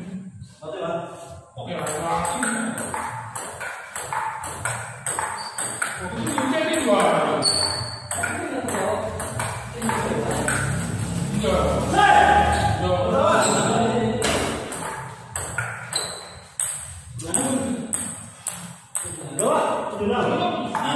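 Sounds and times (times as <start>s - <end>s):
ping pong ball clicking off paddles: 1.8s - 10.9s, 14.2s - 19.6s.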